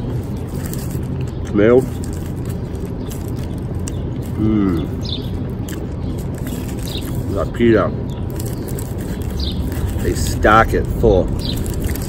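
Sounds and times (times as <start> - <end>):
bird chirp: 0.0 - 12.0
steady low rumble: 0.0 - 12.0.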